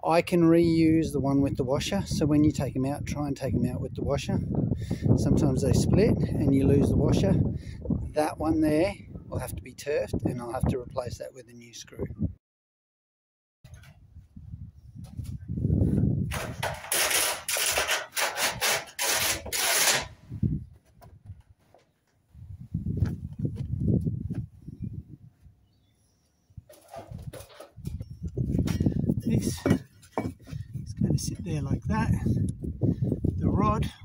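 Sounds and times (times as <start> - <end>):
metal roof sheet scraping: 16.3 - 20.3, 26.7 - 30.6
rumbling handling noise: 26.6 - 32.2.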